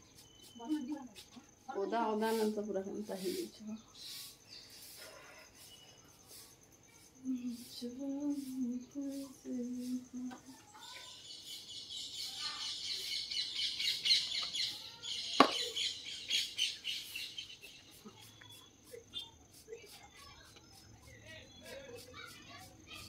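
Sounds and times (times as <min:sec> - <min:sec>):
small birds chirping: 0:00.0 - 0:23.0.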